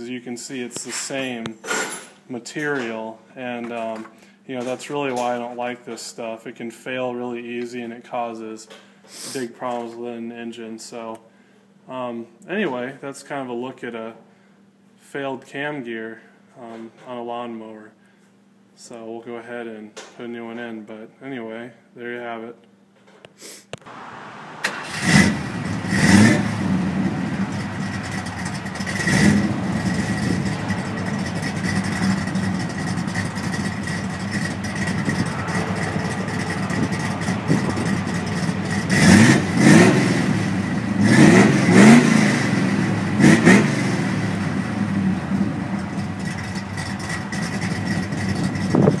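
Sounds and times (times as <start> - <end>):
car engine idling and revving: 23.9 - 49.0
car engine starting: 23.9 - 49.0.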